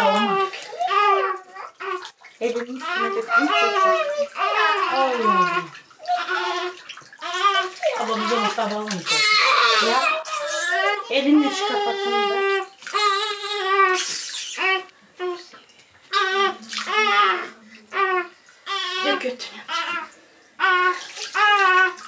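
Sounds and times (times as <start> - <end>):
newborn baby crying: 0.0 - 2.2, 2.8 - 15.4, 16.1 - 22.0.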